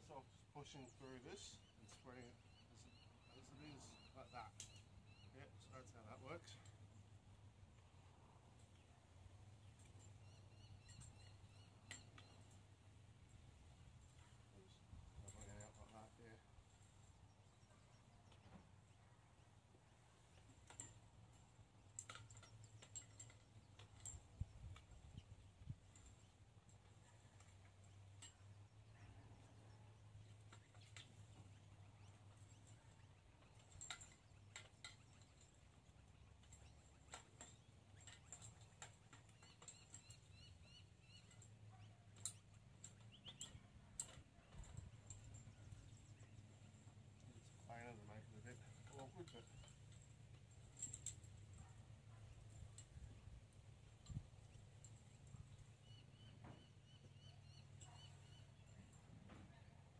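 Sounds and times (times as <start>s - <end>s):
faint clicks and ticks: 0.0s - 59.9s.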